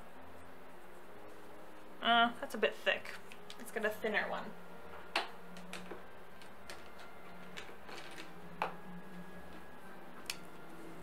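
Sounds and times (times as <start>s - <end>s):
faint steady hum: 0.0s - 11.0s
pens clicking and tapping: 5.1s - 8.8s.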